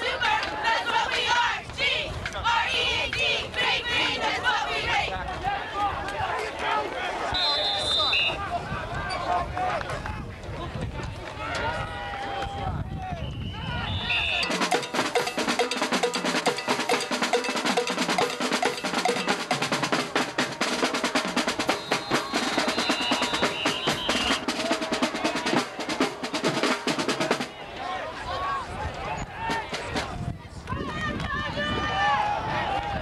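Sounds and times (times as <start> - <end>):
crowd voices: 0.0 - 33.0
snare drums cadence: 14.2 - 27.5.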